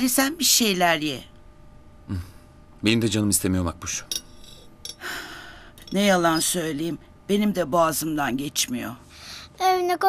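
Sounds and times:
person breathing in: 5.0 - 5.8.

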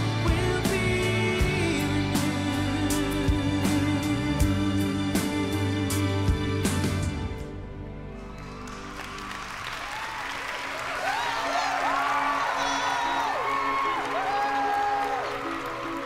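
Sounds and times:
soft music: 0.0 - 10.0, 11.5 - 16.0
audience applauding and cheering: 8.1 - 16.0.

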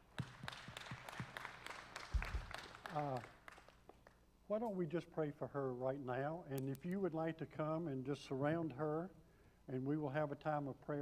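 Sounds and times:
crowd applauding: 0.0 - 3.9.

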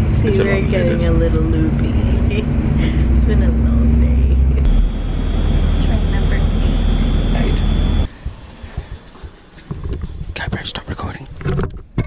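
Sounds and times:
train running rumble: 0.0 - 9.3
thin high whine: 4.6 - 9.4.

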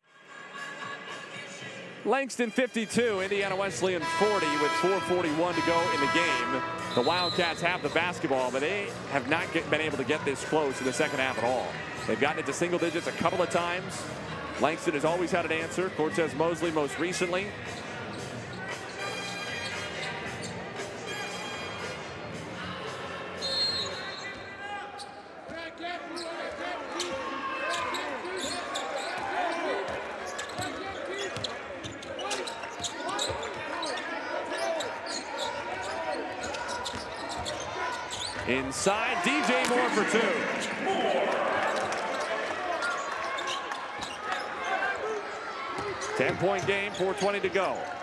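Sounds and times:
crowd voices and shouts: 0.0 - 48.0.

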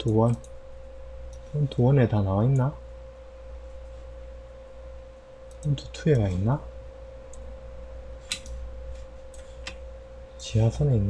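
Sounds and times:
faint steady whine: 0.0 - 11.0
low hum: 0.0 - 11.0.

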